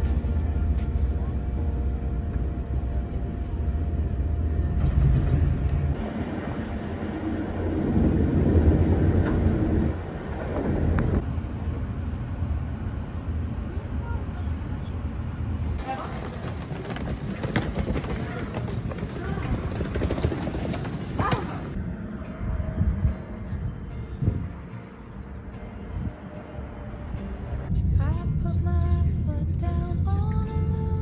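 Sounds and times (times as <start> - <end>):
moving train rumble: 0.0 - 31.0.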